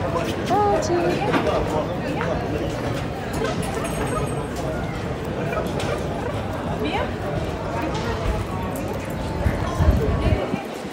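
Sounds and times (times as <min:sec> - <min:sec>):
indistinct voices of passers-by: 0:00.0 - 0:10.9.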